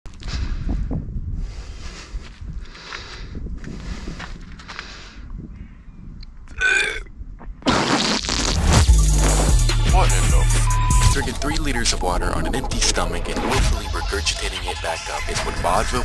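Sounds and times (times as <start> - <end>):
man breathing heavily: 0.1 - 5.6
man retching: 6.5 - 8.8.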